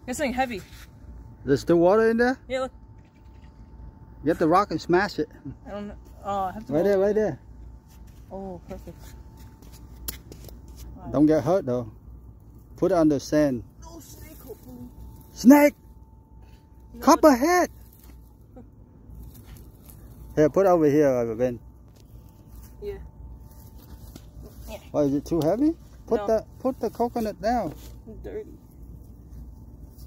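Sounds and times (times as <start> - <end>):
faint steady tone: 0.0 - 30.0
man speaking: 15.4 - 15.8, 17.0 - 17.7, 20.4 - 21.6, 24.9 - 27.8.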